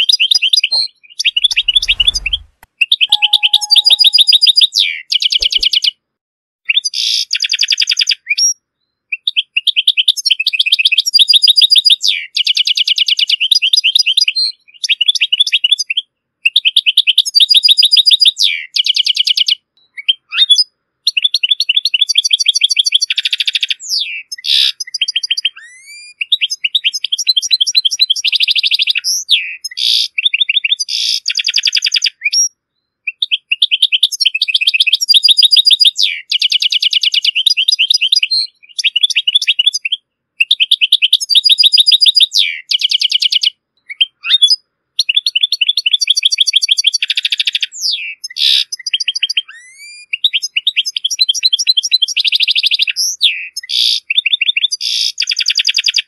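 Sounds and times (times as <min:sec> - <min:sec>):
goldfinch twittering song: 0:00.2 - 0:02.4, 0:03.1 - 0:04.6.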